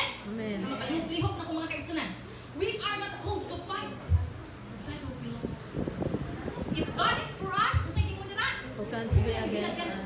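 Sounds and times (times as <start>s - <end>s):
voices speaking in a hall: 0.0s - 10.0s.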